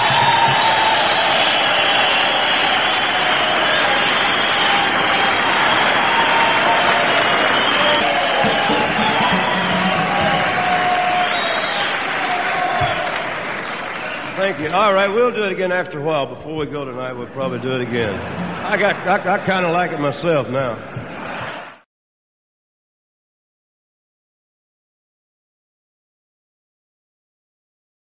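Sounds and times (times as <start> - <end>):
audience applauding and cheering: 0.0 - 15.2, 18.1 - 21.8.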